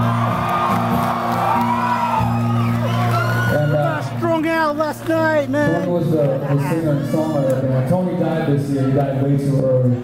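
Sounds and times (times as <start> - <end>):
audience shouts and whoops: 0.0 - 4.2.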